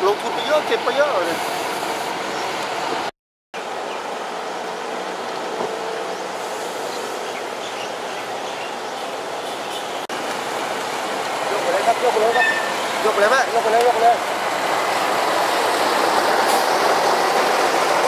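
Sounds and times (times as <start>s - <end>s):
military trucks driving past: 0.0s - 18.0s.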